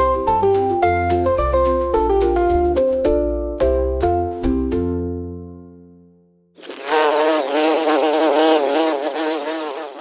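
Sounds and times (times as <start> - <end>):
bee buzzing: 6.6 - 10.0.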